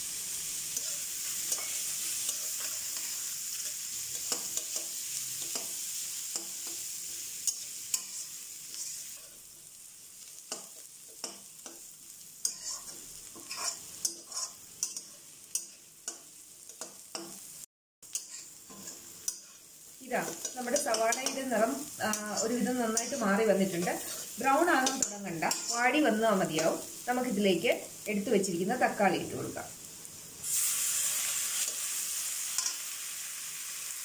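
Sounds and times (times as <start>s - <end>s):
onions sizzling in oil: 0.0s - 34.0s
metal spatula scraping wok: 0.6s - 9.4s, 12.4s - 15.9s, 18.1s - 27.1s, 30.5s - 32.8s.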